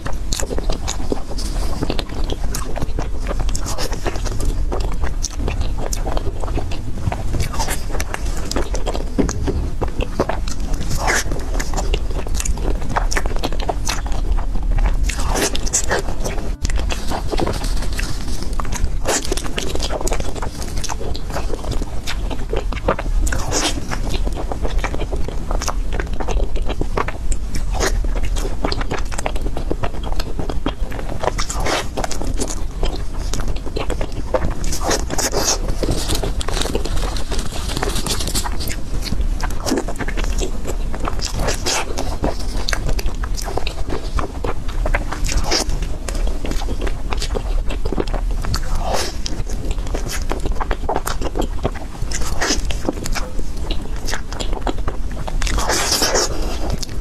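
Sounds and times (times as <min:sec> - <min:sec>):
person chewing rice cakes: 0:00.0 - 0:57.0
steady low hum: 0:00.0 - 0:57.0.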